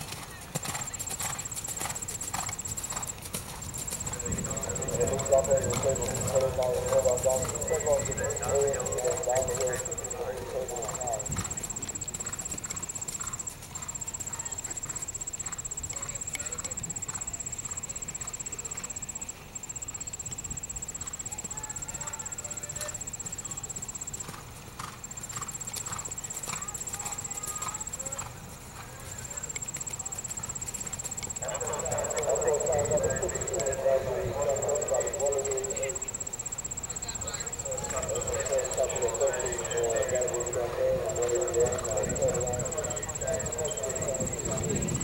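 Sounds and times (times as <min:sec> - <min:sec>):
horse hoofbeats on dirt: 0:00.0 - 0:18.3, 0:24.2 - 0:35.6.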